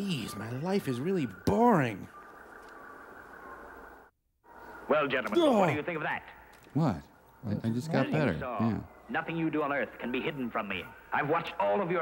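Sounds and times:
film soundtrack hum and hiss: 0.0s - 12.0s.

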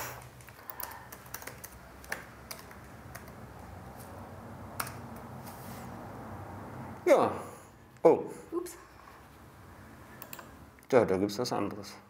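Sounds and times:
laptop keyboard typing: 0.0s - 4.1s, 4.7s - 5.3s, 10.2s - 10.5s.

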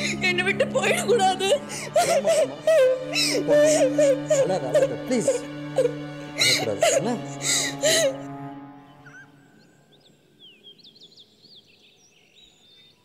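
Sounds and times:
person speaking: 0.0s - 8.2s
background music with low drone: 0.0s - 10.8s.

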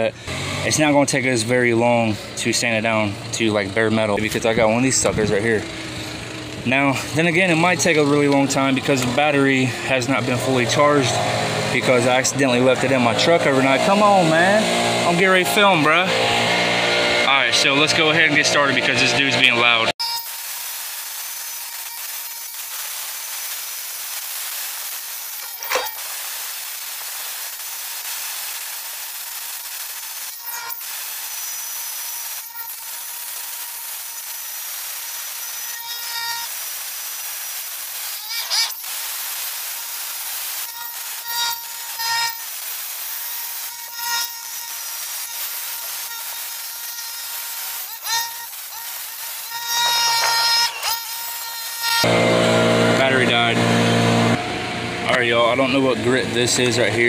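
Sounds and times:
angle grinder sanding metal: 2.6s - 54.4s.

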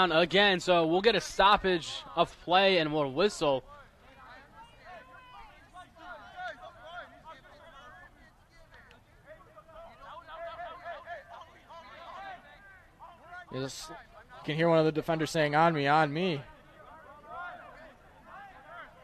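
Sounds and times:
soccer players calling out: 0.0s - 19.0s.

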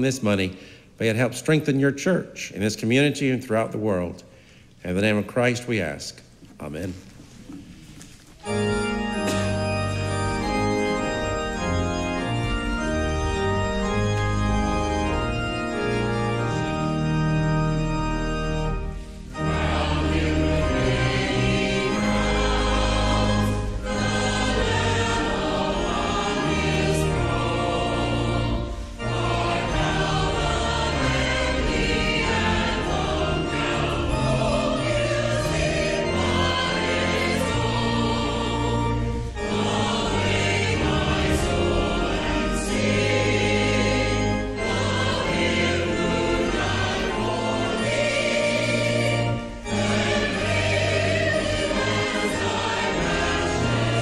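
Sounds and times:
sustained instrumental accompaniment: 8.0s - 54.0s
choir singing: 8.4s - 54.0s.

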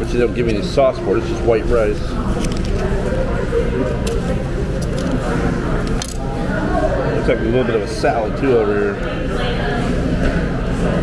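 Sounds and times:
chatter of diners' voices: 0.0s - 11.0s.

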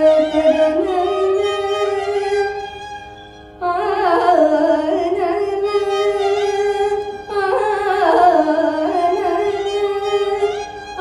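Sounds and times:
violin accompaniment: 0.0s - 11.0s.

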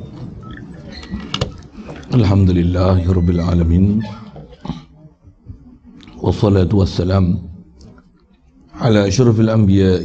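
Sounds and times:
man speaking into a microphone: 2.0s - 4.8s, 6.1s - 7.7s, 8.8s - 10.0s.

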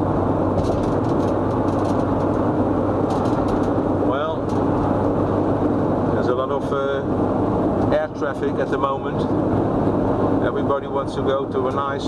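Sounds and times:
low engine hum: 0.0s - 12.0s
road and wind noise in car: 0.0s - 12.0s.

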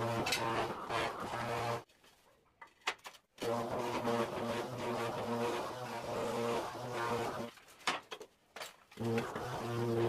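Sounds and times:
tile vibrator buzzing: 0.0s - 1.8s, 3.4s - 7.5s, 9.0s - 10.0s.

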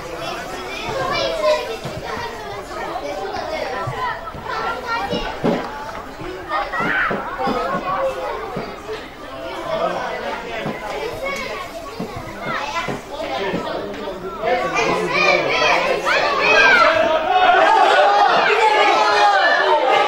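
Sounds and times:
children shouting and calling: 0.0s - 20.0s.

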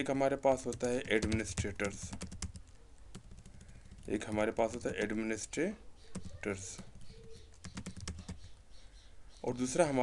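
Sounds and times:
computer keyboard typing: 0.6s - 5.2s, 6.1s - 8.6s.

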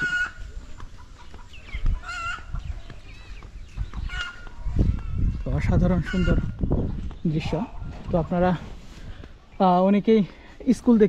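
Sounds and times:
chickens calling: 0.0s - 11.0s.

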